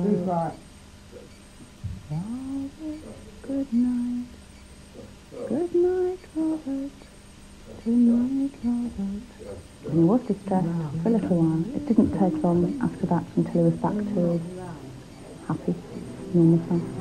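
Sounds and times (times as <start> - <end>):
person humming softly: 1.9 - 4.3, 5.0 - 7.0, 7.8 - 14.9.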